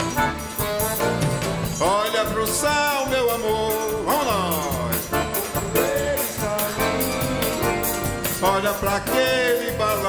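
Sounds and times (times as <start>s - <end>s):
accordion: 0.0s - 10.0s
bass drum: 0.0s - 10.0s
drum kit: 0.0s - 10.0s
fast high ticking rhythm: 0.0s - 10.0s
guitar: 0.0s - 10.0s.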